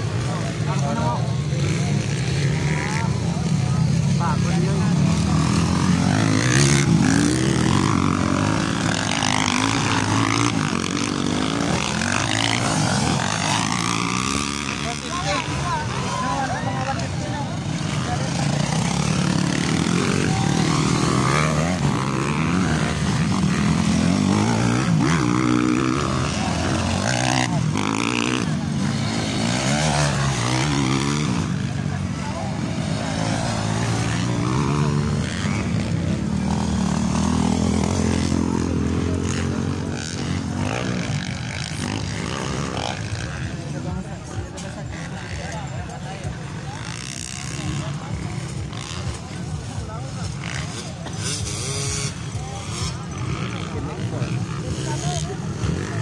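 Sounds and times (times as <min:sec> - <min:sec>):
crowd chatter: 0:00.0 - 0:56.0
dirt bike engines revving: 0:00.0 - 0:56.0.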